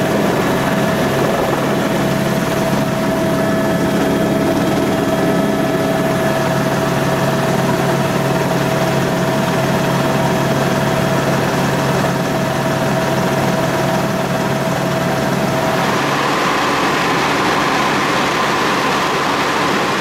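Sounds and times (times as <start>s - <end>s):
constant whine: 0.0s - 20.0s
helicopter engine and rotor drone: 0.0s - 20.0s.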